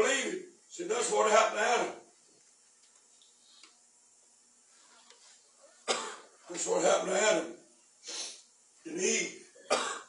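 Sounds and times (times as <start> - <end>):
man clearing his throat: 5.8 - 6.3, 9.5 - 10.0
man coughing: 5.8 - 6.3, 9.5 - 10.0.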